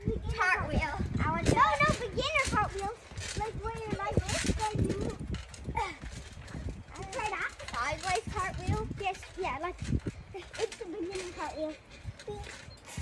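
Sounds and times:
children talking: 0:00.0 - 0:13.0.

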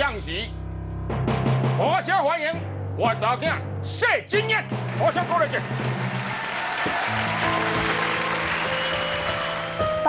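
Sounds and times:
show music: 0:00.0 - 0:10.0
audience applause: 0:04.8 - 0:10.0.

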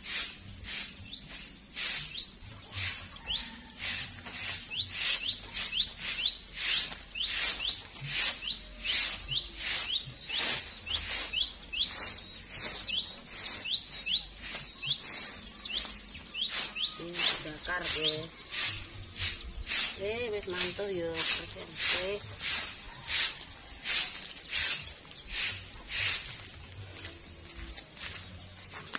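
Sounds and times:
bird chirping: 0:00.0 - 0:28.9
broom sweeping grass and leaves: 0:00.0 - 0:28.9.

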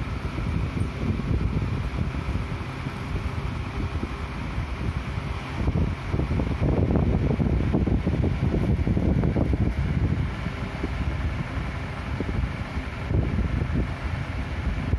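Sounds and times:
wind buffeting microphone: 0:00.0 - 0:14.9.

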